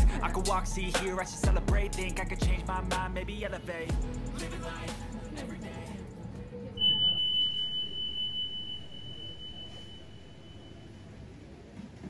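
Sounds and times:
high ringing tone: 6.8s - 11.4s.

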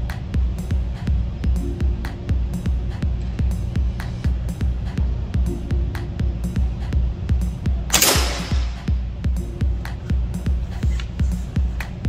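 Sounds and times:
background music with beat: 0.0s - 12.0s
air rifle shot: 7.9s - 8.9s.

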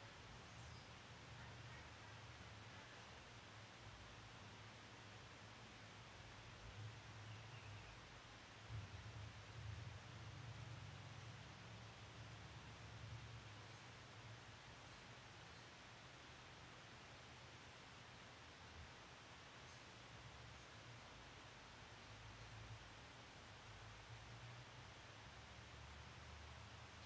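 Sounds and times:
faint low rumble: 0.0s - 15.7s.

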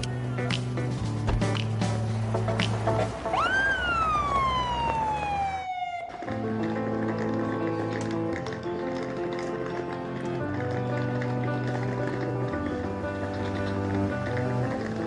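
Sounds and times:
background music: 0.0s - 15.0s
police siren wail: 3.3s - 6.2s.

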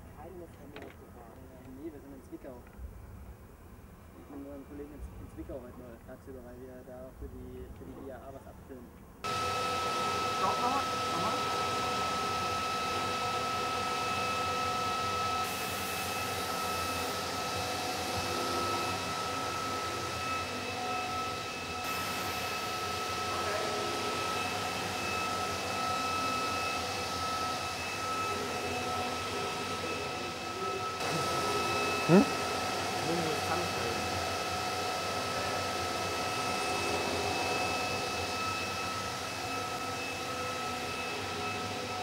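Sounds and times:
workshop mechanical drone: 7.0s - 42.0s
high-pitched whine: 9.3s - 42.0s.

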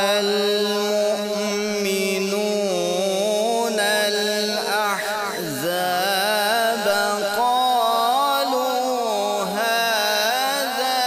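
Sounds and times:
man reciting melodically: 0.0s - 11.0s.

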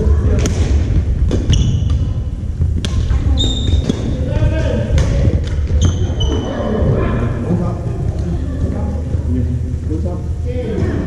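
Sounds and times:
reverberant hall voices: 0.0s - 11.0s
racket hitting shuttlecock: 0.4s - 2.1s
shoe squeaks on court: 1.5s - 2.0s, 3.3s - 4.0s, 5.8s - 6.6s.

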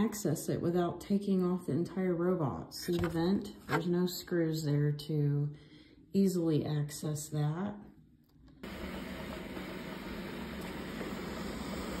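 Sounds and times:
vacuum suction motor humming: 8.6s - 12.0s.

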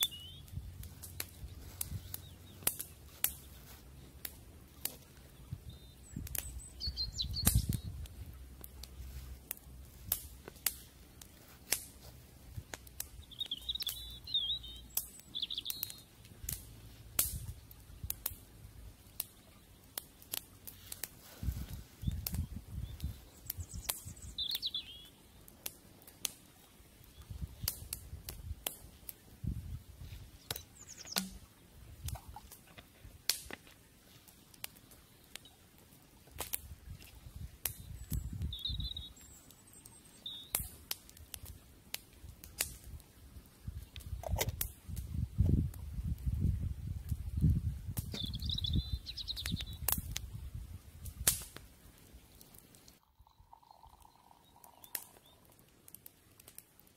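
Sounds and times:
bird chirping: 0.0s - 2.7s, 5.3s - 7.9s, 13.1s - 16.2s, 22.8s - 25.4s, 30.4s - 31.5s, 37.8s - 40.6s, 48.1s - 49.8s, 53.0s - 55.5s
campfire crackling and popping: 0.0s - 56.9s.

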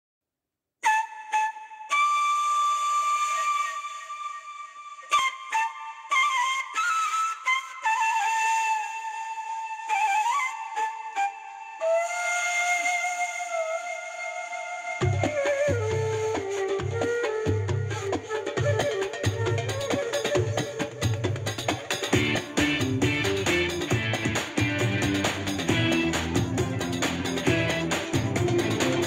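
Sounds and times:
solo flute melody: 0.8s - 29.0s.

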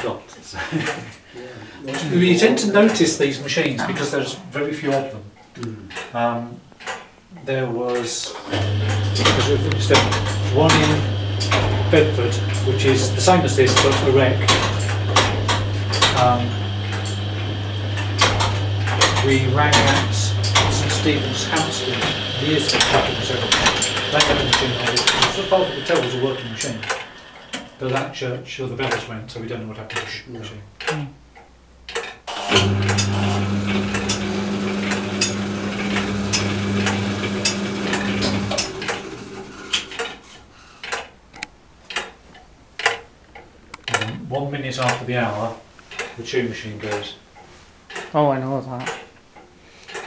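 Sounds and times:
carillon mechanism humming: 8.4s - 28.2s, 31.9s - 41.0s.

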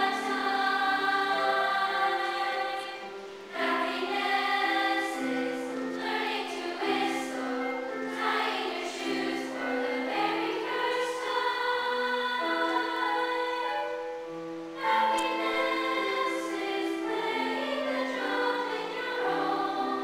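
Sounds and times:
youth choir singing: 0.0s - 20.0s.

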